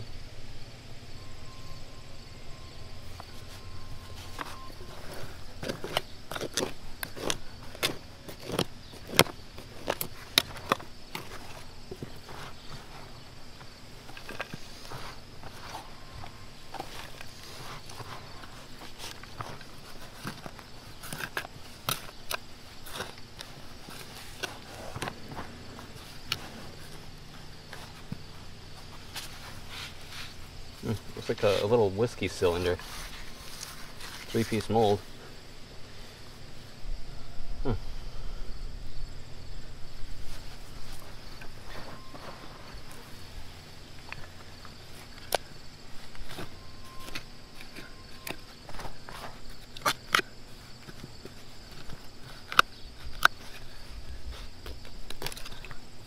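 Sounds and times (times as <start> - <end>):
trowel scraping dirt: 3.1 - 35.0.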